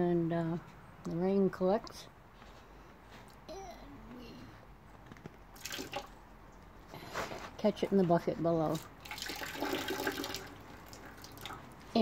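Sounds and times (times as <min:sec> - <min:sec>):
water trickling into a bucket: 0:05.6 - 0:06.2, 0:08.7 - 0:11.8.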